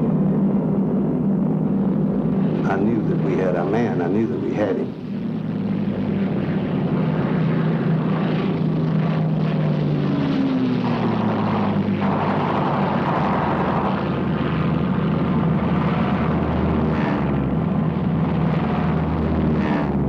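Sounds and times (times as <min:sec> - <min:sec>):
piston aircraft engines droning: 0:00.0 - 0:20.0.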